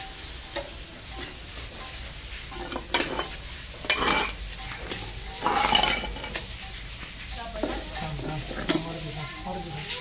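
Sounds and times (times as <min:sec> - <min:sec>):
close rustling and scraping: 0:00.6 - 0:09.2.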